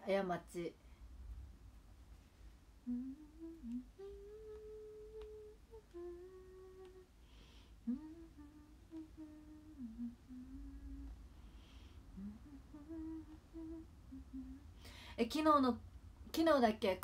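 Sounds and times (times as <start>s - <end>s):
woman humming a melody: 2.8s - 7.2s, 7.8s - 11.4s, 12.1s - 14.8s.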